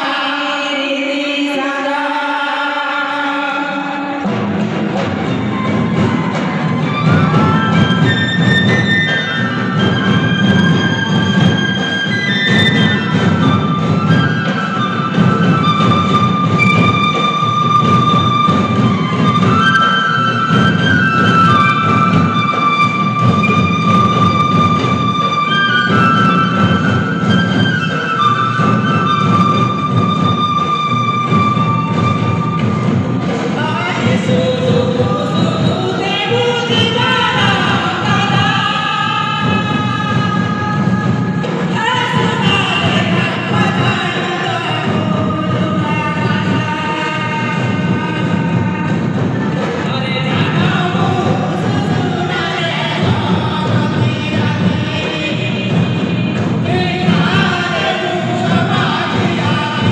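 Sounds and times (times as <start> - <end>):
barrel hand drums beating: 4.2 - 59.9.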